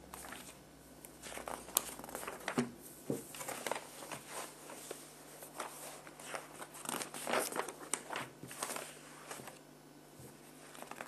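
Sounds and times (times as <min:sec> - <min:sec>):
crinkling and rustling: 0:01.2 - 0:09.6, 0:10.2 - 0:11.0.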